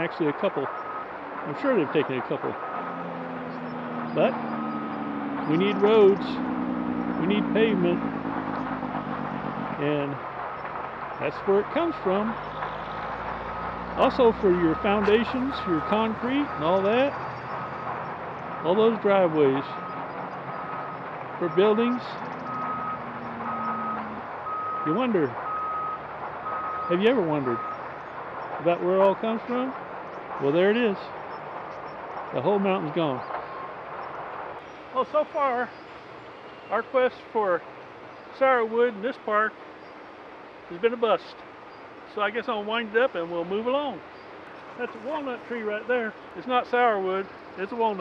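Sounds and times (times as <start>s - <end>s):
quarry background noise: 0.0s - 48.0s
reversing alarm beeps: 0.7s - 1.1s, 14.6s - 17.8s, 22.4s - 27.9s
heavy machinery drone: 2.6s - 27.8s.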